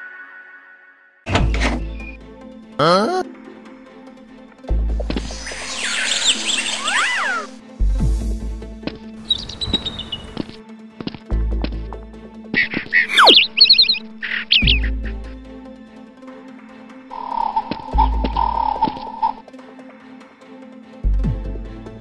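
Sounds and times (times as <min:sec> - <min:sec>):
background music: 0:00.0 - 0:22.0
high chirping and swooping sounds: 0:05.2 - 0:07.5, 0:12.8 - 0:14.9.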